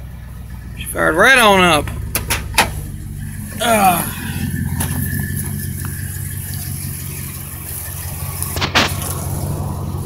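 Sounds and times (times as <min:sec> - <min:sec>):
pickup truck engine idling: 0:00.0 - 0:10.0.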